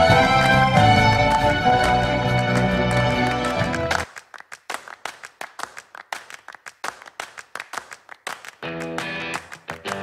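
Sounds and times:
people clapping: 0.0 - 10.0.

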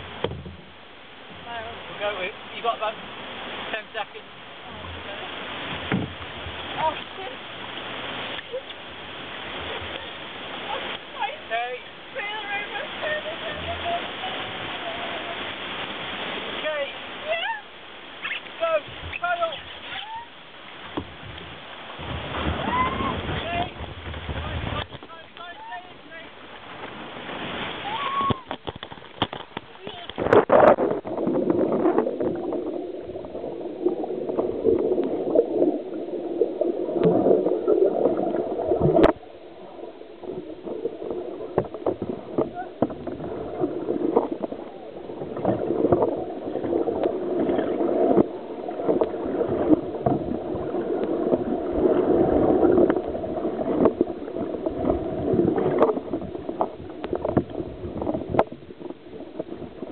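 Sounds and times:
rushing water: 0.0 - 59.9
underwater churning gurgle: 0.0 - 59.9.

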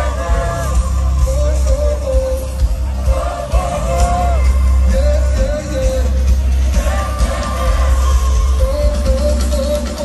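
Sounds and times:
heavy bass: 0.0 - 10.0
live concert music: 0.0 - 10.0
sung vocals: 0.0 - 10.0.

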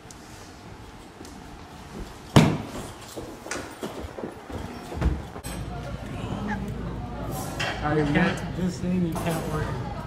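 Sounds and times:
footsteps in hallway: 0.1 - 5.5.

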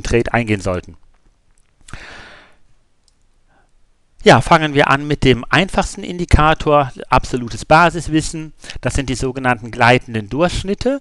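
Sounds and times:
man breathing: 1.9 - 2.7.

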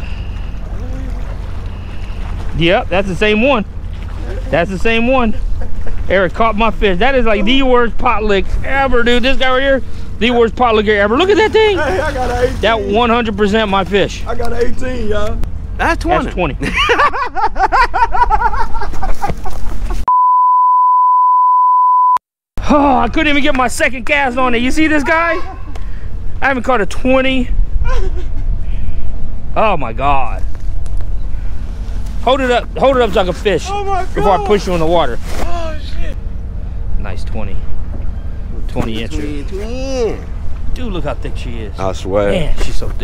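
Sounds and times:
low waterfront rumble: 0.0 - 20.1, 22.6 - 43.0
high-pitched test tone beep: 20.1 - 22.2.

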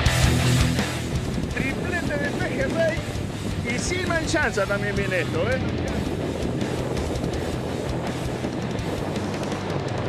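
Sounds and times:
surf: 0.0 - 10.0
wind: 0.0 - 10.0.

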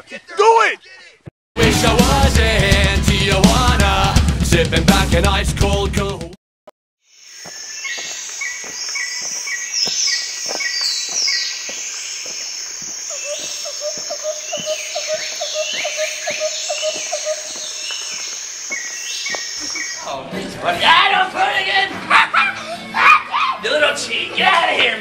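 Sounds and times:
birds calling: 7.1 - 20.2.

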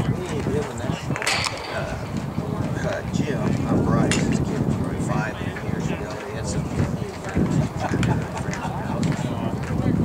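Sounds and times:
spectators talking: 0.0 - 10.0.

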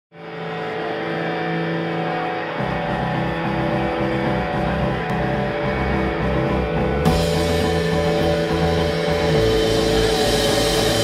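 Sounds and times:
ringing electric guitar chord: 0.2 - 11.0.

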